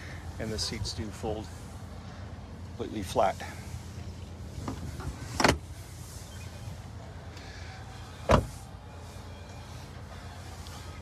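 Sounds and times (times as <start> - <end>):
car door shutting: 4.6 - 5.7, 8.2 - 8.6
car seatback latching: 4.6 - 5.7, 8.3 - 8.5.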